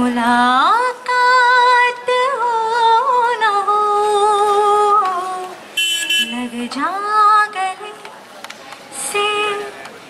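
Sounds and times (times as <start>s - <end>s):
woman singing unaccompanied: 0.0s - 5.6s, 6.2s - 8.1s, 9.0s - 9.8s.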